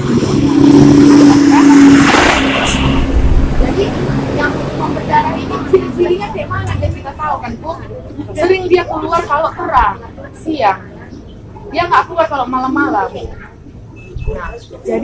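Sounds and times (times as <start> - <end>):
motor vehicle passing: 0.0 - 15.0.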